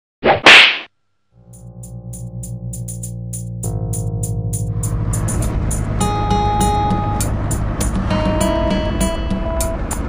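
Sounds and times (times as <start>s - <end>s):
sharp slap-like hits: 0.2s - 0.9s
electronic music: 1.4s - 10.0s.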